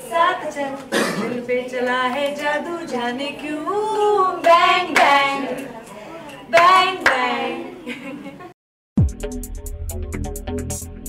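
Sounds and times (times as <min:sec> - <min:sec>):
girls and woman singing: 0:00.0 - 0:08.0
hand claps: 0:04.4 - 0:05.2, 0:06.5 - 0:07.3.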